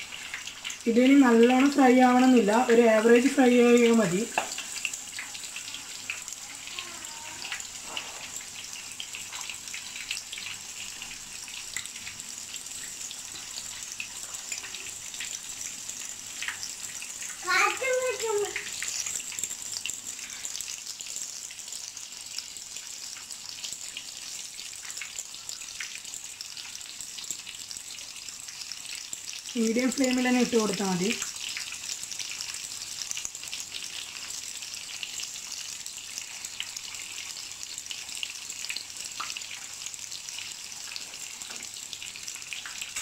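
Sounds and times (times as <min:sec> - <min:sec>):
fish frying in hot oil: 0:00.0 - 0:43.0.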